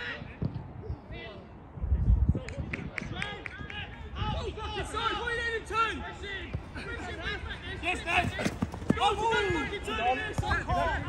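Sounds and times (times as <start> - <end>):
players shouting: 4.2 - 11.0.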